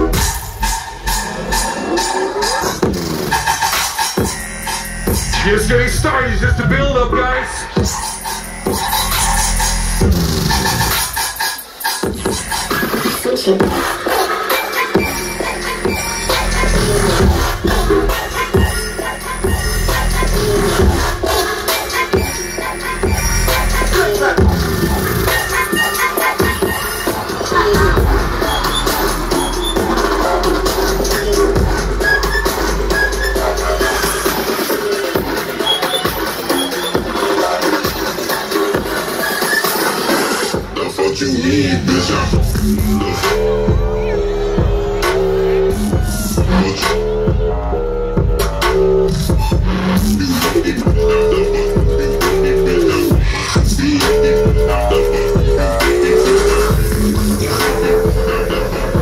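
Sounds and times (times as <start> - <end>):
electronic bass music: 0.0 - 39.3, 40.4 - 59.0.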